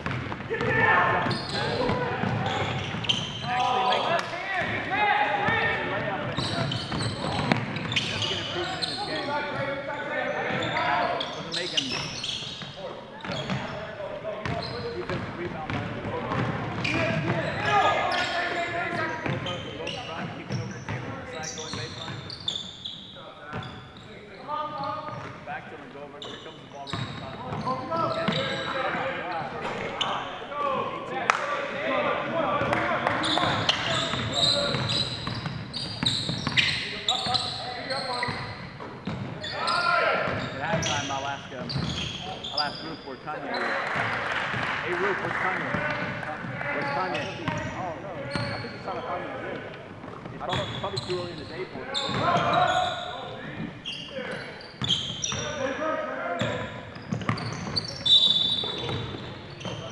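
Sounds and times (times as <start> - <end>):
basketball bouncing on wooden floor: 0.0 - 0.7, 14.4 - 17.4
people calling out: 0.5 - 12.4, 51.8 - 56.7.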